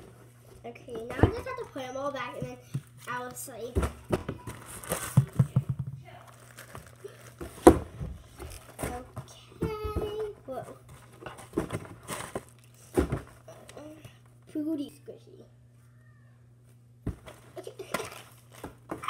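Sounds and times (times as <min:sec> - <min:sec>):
plastic packaging crinkling: 0:04.4 - 0:05.5, 0:06.1 - 0:09.0.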